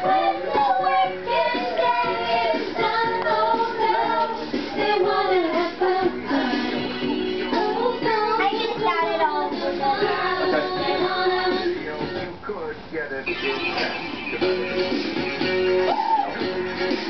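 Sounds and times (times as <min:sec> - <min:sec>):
girl singing: 0:00.0 - 0:11.7.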